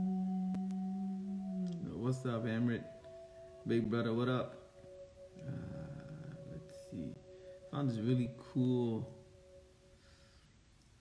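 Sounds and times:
man humming steady note: 0.0 - 9.8.

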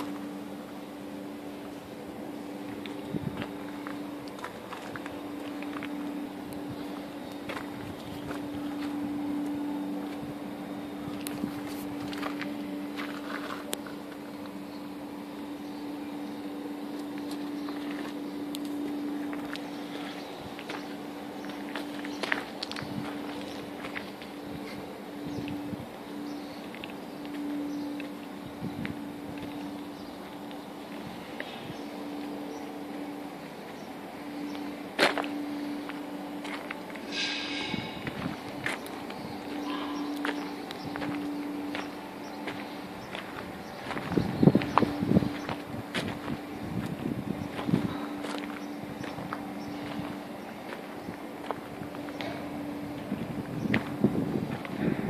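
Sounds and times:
steady low hum: 0.0 - 55.0
footsteps on gravel: 2.6 - 14.6, 16.9 - 24.9, 26.6 - 33.0, 33.6 - 54.8.

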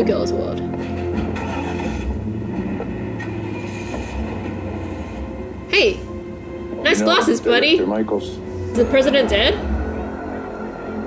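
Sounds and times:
held musical drone: 0.0 - 11.0.

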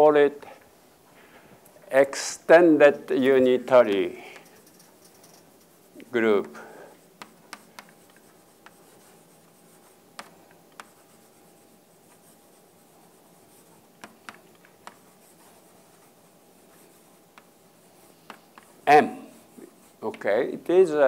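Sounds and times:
man speaking: 1.9 - 4.4, 6.0 - 6.8, 18.8 - 21.0
chalk tapping on board: 3.2 - 20.3
chalk scraping on chalkboard: 3.8 - 20.4.

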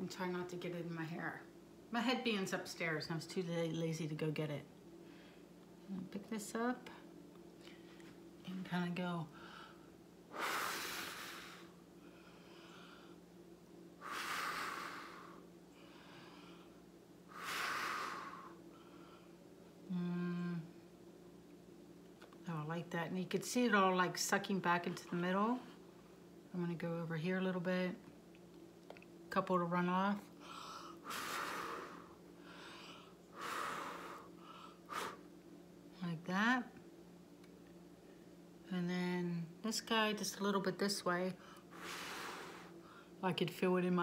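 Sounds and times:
quiet breaths: 4.9 - 6.1, 6.8 - 8.4, 9.2 - 21.0, 30.2 - 36.0, 41.3 - 43.2
person blowing breathily: 10.3 - 11.8, 14.0 - 15.4, 17.3 - 18.6, 30.7 - 35.3, 41.7 - 42.8
hissing breath puffs: 41.7 - 43.2.

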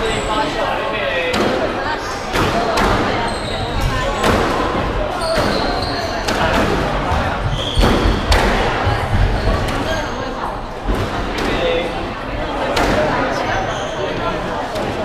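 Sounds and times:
squash ball hitting rackets and walls: 1.3 - 10.0, 10.8 - 11.7, 12.6 - 13.2
shoes squeaking on wooden floor: 3.2 - 4.5, 5.2 - 6.5, 7.2 - 8.1.

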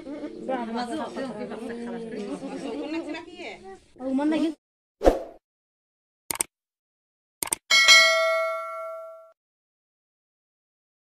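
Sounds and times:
notification bell ding: 7.7 - 9.4.

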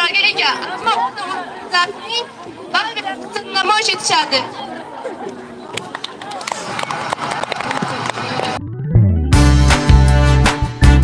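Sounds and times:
crowd chatter: 0.0 - 8.7.

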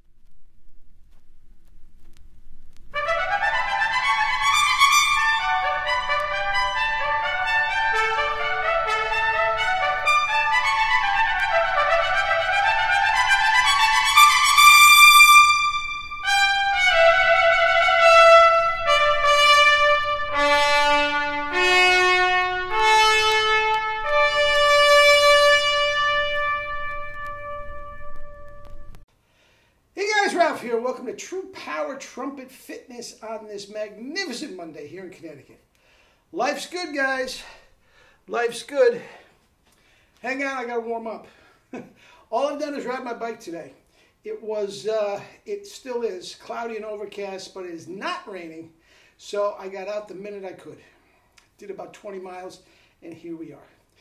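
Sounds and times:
faint low rumble: 0.0 - 3.0
music with trumpet and strings: 2.9 - 29.1.

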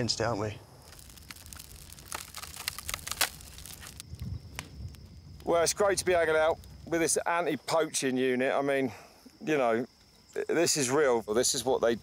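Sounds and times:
campfire crackling and snapping: 0.6 - 8.4.

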